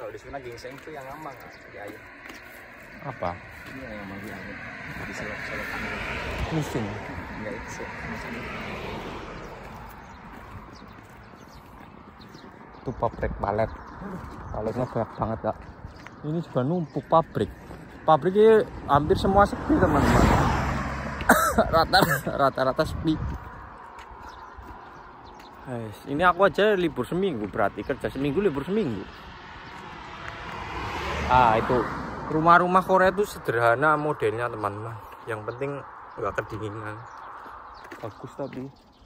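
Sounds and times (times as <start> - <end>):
footsteps walking: 0.0 - 18.8, 23.2 - 30.6, 35.0 - 39.0
passing vehicle engine: 0.0 - 38.8
road noise: 0.0 - 39.0
man speaking: 3.0 - 8.5, 12.8 - 15.6, 21.3 - 23.3, 31.3 - 37.1.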